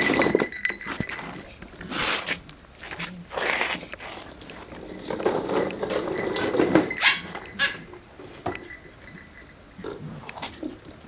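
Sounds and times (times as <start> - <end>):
small metal bells jingling: 0.0 - 1.6, 4.6 - 10.2.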